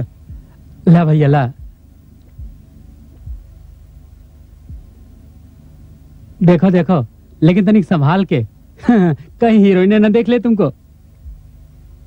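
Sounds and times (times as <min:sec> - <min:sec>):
soft low thuds: 0:00.0 - 0:00.8, 0:01.5 - 0:05.2, 0:11.2 - 0:11.6
steady low hum: 0:00.0 - 0:12.0.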